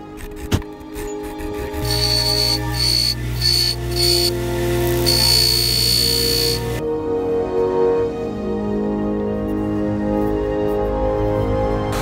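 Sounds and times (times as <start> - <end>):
background music: 0.0 - 12.0
power tool whining on metal: 1.4 - 6.8.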